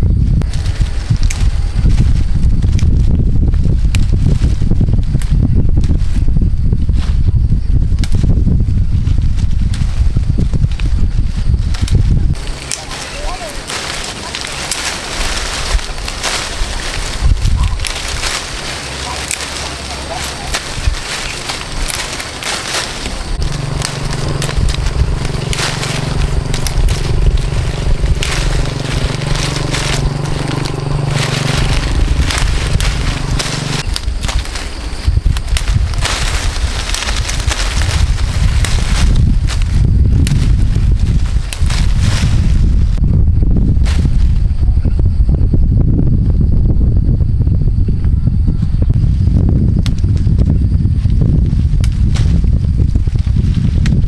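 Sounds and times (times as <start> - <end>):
small engine running: 12.4 - 34.5.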